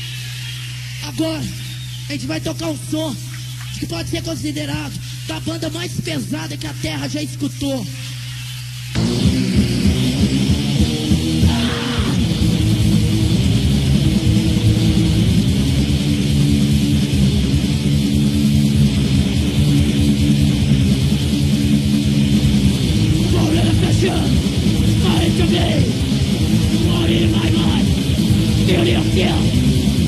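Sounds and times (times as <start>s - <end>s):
heavy metal band playing live: 0.0s - 30.0s.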